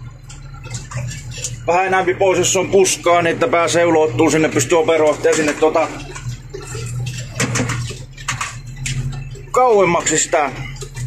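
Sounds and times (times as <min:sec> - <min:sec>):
tractor engine droning: 0:00.0 - 0:11.0.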